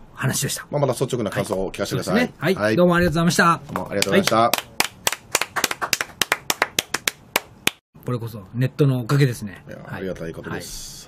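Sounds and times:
people clapping hands: 0:03.8 - 0:07.8.

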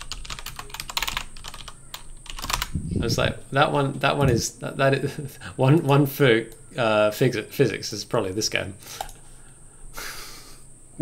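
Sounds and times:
keyboard typing clicks: 0:00.0 - 0:02.7.

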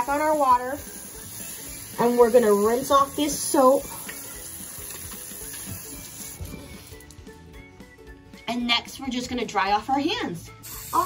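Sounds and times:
tap water running over hands: 0:00.0 - 0:07.3
soft background music: 0:00.0 - 0:11.0.

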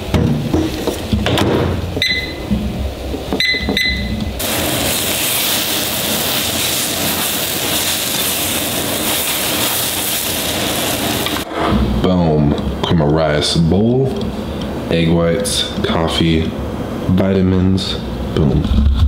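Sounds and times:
microwave beeps: 0:02.0 - 0:02.5, 0:03.3 - 0:04.3
eggs sizzling in a pan: 0:04.4 - 0:11.5.

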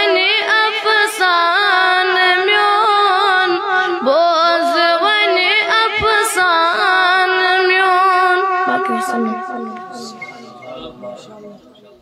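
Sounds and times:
boy singing unaccompanied: 0:00.0 - 0:10.7
softer lower voice: 0:08.6 - 0:11.6.

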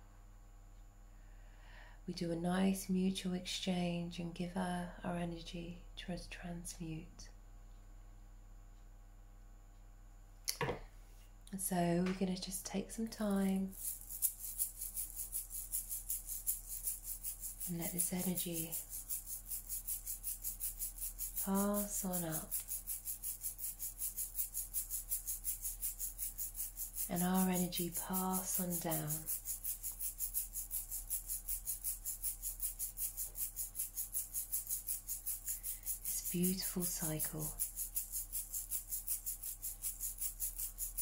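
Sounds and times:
rhythmic hissing shaking sound: 0:11.6 - 0:41.0
high-pitched rustling pulse: 0:13.4 - 0:41.0.

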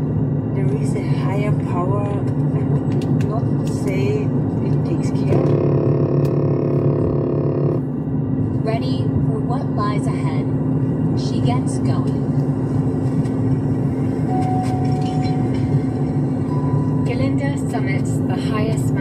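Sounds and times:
engine and road drone in cabin: 0:00.0 - 0:19.0.

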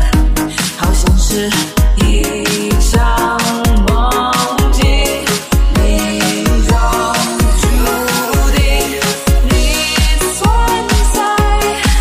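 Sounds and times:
electronic dance music: 0:00.0 - 0:12.0
heavy kick-drum beat: 0:00.0 - 0:12.0.

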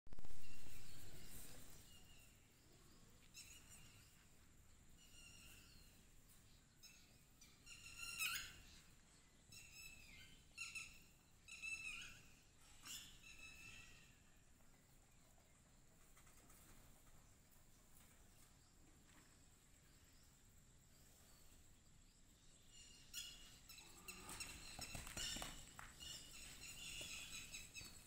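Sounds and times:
birds calling: 0:22.4 - 0:28.0.

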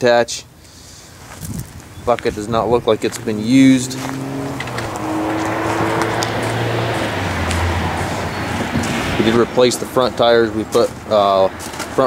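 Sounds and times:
road noise: 0:00.5 - 0:12.0
vehicle engine hum: 0:02.3 - 0:12.0.

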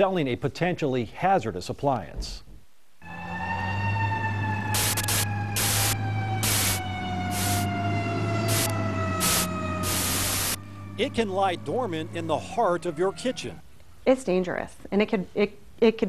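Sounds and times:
fire engine siren winding down: 0:03.0 - 0:13.6
short bursts of hiss: 0:04.8 - 0:07.7, 0:08.4 - 0:10.6.

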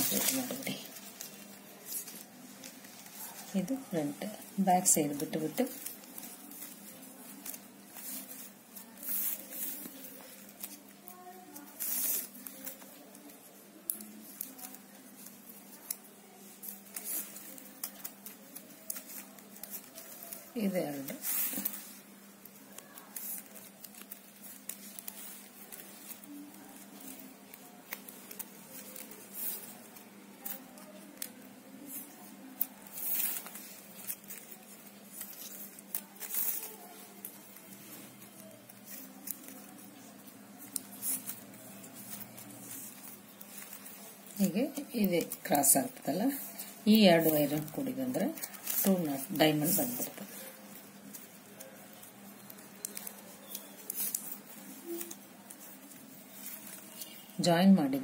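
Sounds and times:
plastic strips rustling and scraping: 0:00.0 - 0:58.0.

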